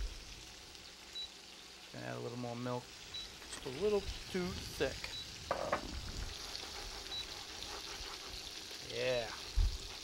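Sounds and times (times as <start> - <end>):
chicken frying in oil: 0.0 - 10.0
whisk stirring sauce in pan: 6.0 - 10.0.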